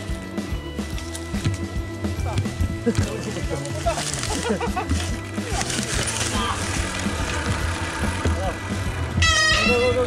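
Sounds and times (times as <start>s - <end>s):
bike rattles and clicks: 0.8s - 8.7s
bike tyre rumble: 2.3s - 10.0s.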